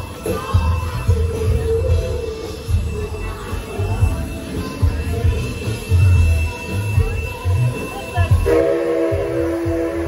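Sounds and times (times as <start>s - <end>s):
steam locomotive whistle: 6.7s - 10.0s.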